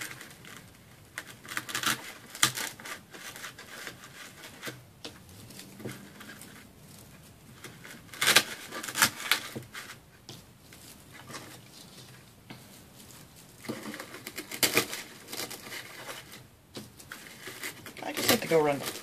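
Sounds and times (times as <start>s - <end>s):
scratchy rustling of artificial pine: 0.0s - 19.0s.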